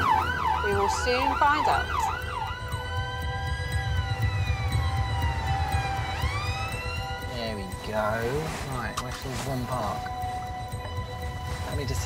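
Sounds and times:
ambulance siren: 0.0 - 12.0.

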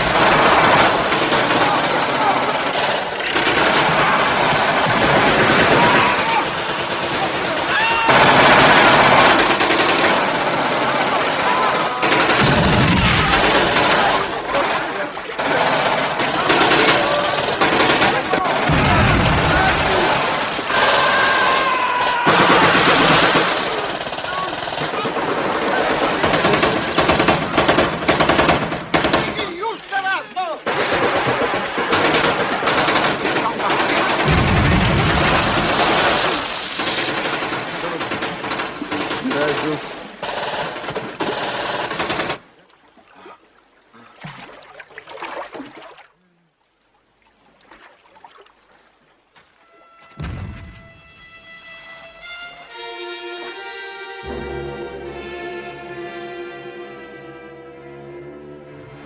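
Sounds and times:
machine-gun and rifle fire: 0.0 - 29.6, 30.6 - 42.5
deep booms: 12.4 - 14.0, 18.7 - 20.7, 34.2 - 36.6, 50.2 - 51.5.

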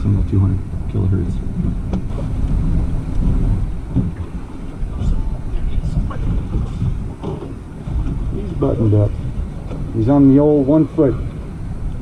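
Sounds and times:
boat on choppy water rumbling: 0.0 - 12.0
wind buffeting microphone: 0.0 - 12.0.

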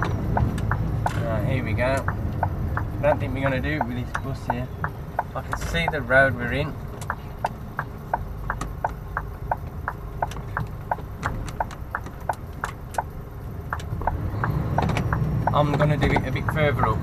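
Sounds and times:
indicator flasher ticking: 0.0 - 16.8
diesel engine rumble: 0.0 - 17.0.

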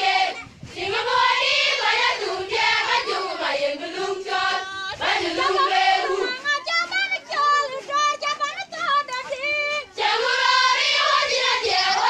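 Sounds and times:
young women singing together: 0.0 - 12.0.

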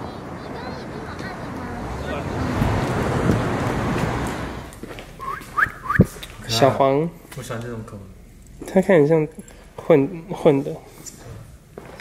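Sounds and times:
wind noise on microphone: 1.0 - 4.6
short rising whistles: 5.2 - 6.1.

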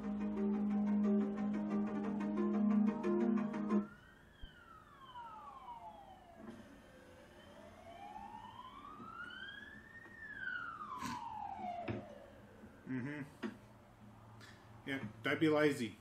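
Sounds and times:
siren wailing: 0.0 - 13.1.

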